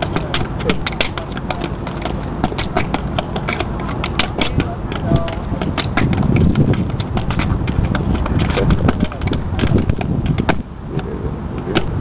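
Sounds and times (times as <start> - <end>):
tap shoes on metal plate: 0.0 - 12.0.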